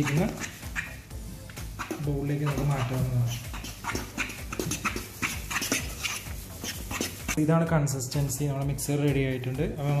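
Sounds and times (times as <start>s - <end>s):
spoon scraping metal pan: 1.8s - 7.4s.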